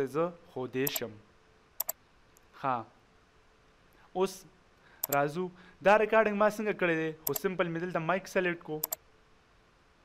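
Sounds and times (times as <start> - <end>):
computer mouse button clicks: 0.8 - 1.0, 7.2 - 7.4, 8.8 - 9.0.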